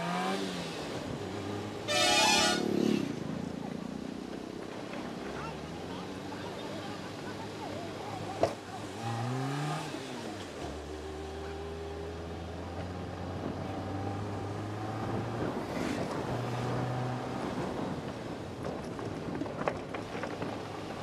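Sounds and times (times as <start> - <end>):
car engine revving: 0.0 - 3.6, 8.8 - 17.9.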